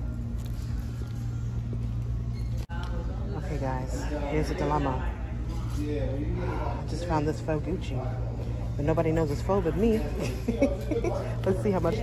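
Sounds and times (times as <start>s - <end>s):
faint background music: 0.0s - 12.0s
low store hum: 0.0s - 12.0s.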